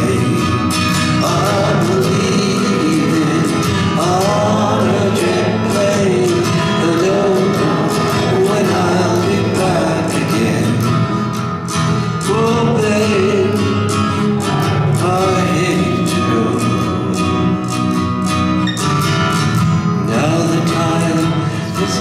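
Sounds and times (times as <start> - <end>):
man singing: 0.0 - 18.0, 19.7 - 22.0
acoustic guitar strumming: 0.0 - 22.0.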